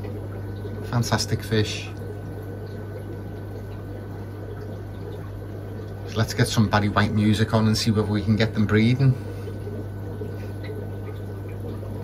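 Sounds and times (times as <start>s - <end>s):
steady low hum: 0.0s - 12.0s
water trickling and bubbling: 0.0s - 12.0s.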